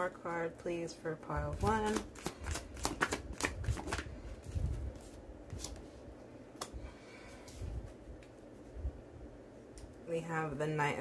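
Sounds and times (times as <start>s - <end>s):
cards being shuffled: 1.5s - 5.9s.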